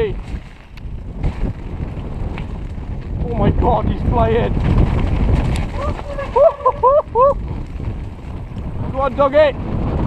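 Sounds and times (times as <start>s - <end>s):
bike tyres rolling on gravel: 0.0s - 10.0s
wind buffeting microphone: 0.0s - 10.0s.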